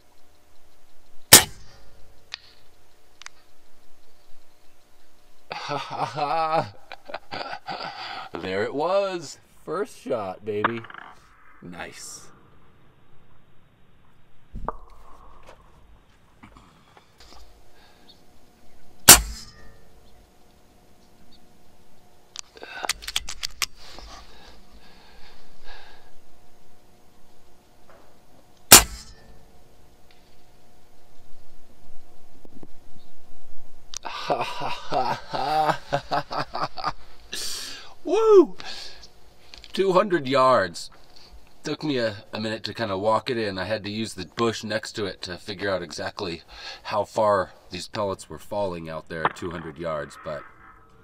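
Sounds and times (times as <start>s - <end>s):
air rifle shot: 1.3s - 2.0s, 19.1s - 19.8s, 28.7s - 29.2s.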